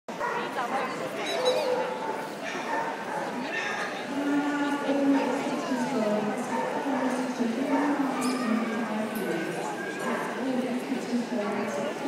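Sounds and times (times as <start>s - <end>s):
dog barking: 0.1s - 3.9s, 6.5s - 6.9s
many people talking: 0.1s - 12.0s.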